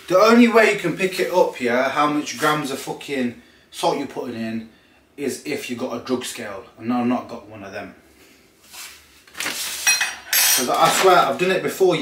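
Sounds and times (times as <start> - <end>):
plastic pouch rustling and crinkling: 8.7 - 9.9, 10.6 - 11.5.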